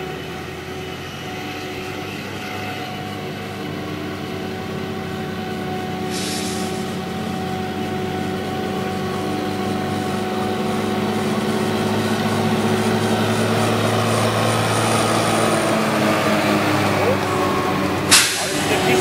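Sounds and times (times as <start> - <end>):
tractor engine drone: 0.0 - 19.0.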